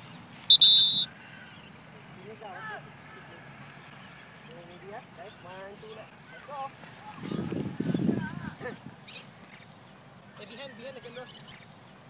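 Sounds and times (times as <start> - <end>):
high-pitched whistle: 0.5 - 1.1.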